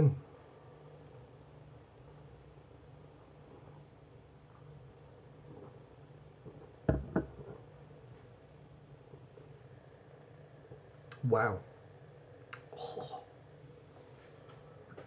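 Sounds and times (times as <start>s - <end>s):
glass set down on worktop: 6.9s - 7.4s.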